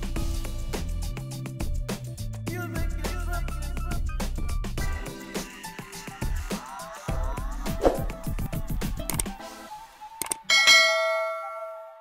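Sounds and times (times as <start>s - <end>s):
mouse clicks: 10.2s - 10.4s
notification bell ding: 10.5s - 12.0s.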